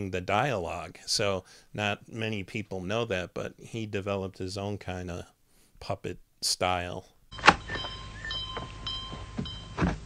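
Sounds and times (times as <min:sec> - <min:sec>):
thin steady whine: 0:07.3 - 0:10.0.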